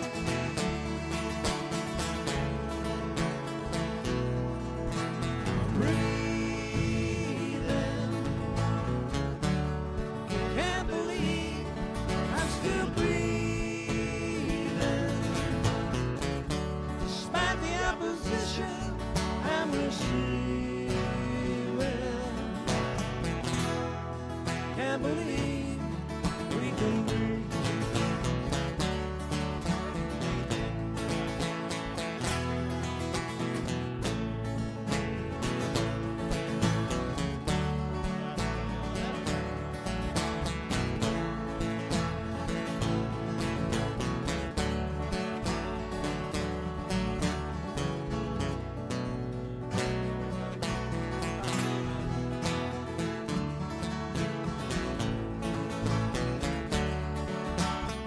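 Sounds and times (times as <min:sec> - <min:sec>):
live acoustic band playing: 0:00.0 - 0:58.0
strummed acoustic guitars: 0:00.0 - 0:58.0.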